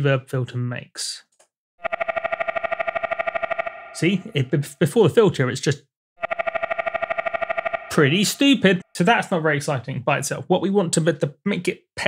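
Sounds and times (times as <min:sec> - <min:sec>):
synth tone in rapid pulses: 0:01.8 - 0:04.3, 0:06.2 - 0:08.8.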